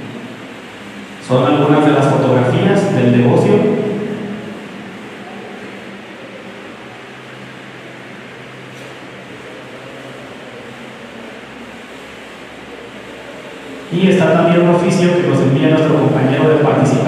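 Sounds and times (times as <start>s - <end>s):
constant hiss: 0.0s - 17.0s
ventilation hum: 0.0s - 17.0s.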